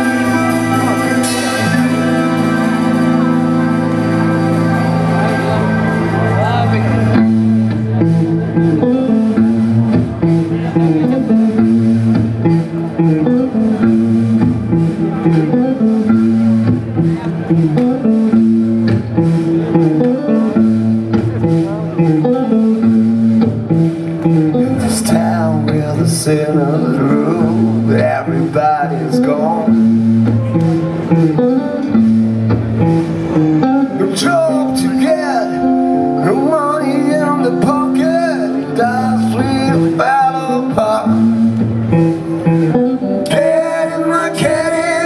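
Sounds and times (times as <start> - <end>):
bass guitar: 0.0 - 45.0
electric guitar riff: 0.0 - 45.0.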